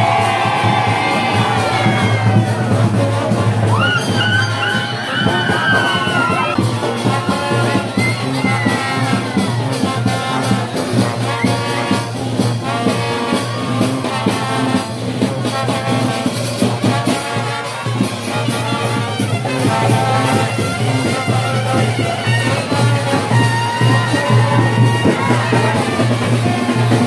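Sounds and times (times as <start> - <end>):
tuba bass line: 0.0 - 3.8, 4.4 - 27.0
percussion beat: 0.0 - 27.0
trombones: 0.0 - 27.0
trumpets: 0.0 - 27.0.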